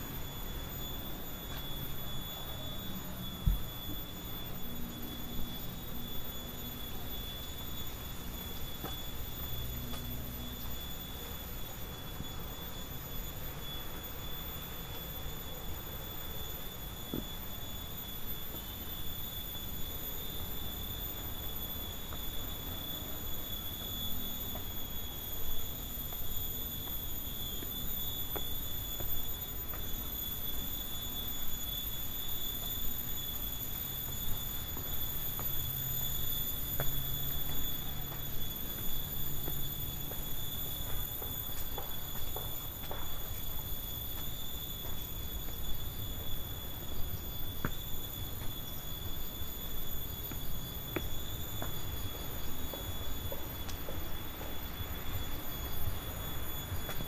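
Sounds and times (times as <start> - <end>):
steady high-pitched whine: 0.0 - 57.0
footsteps on stone steps: 32.6 - 55.0.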